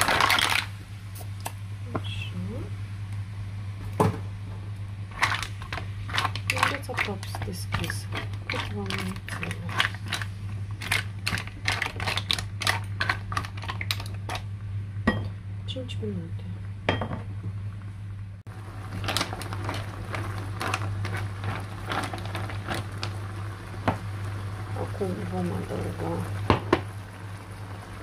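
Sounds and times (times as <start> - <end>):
mussel shells clattering in pan: 0.0 - 0.7, 5.1 - 14.4, 18.9 - 23.2
sauce bubbling: 18.5 - 28.0.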